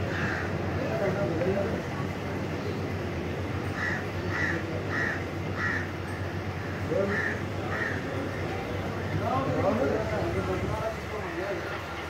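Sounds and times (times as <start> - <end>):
bird calling: 0.0 - 1.2, 3.6 - 9.6.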